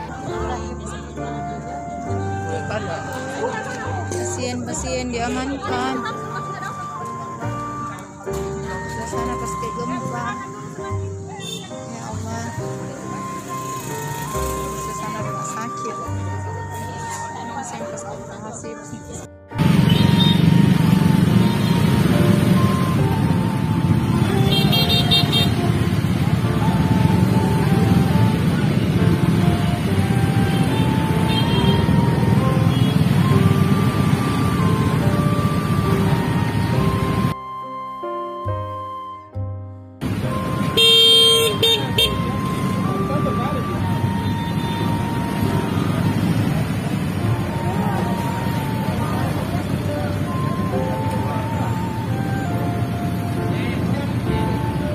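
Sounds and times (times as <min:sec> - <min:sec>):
people's voices: 0:00.0 - 0:13.6, 0:14.6 - 0:19.3, 0:42.1 - 0:54.9
motorcycles and cars rumbling: 0:00.0 - 0:37.4, 0:40.0 - 0:54.9
motorcycle and car engines idling: 0:19.6 - 0:37.3
high pulsing horn beep: 0:40.4 - 0:46.0.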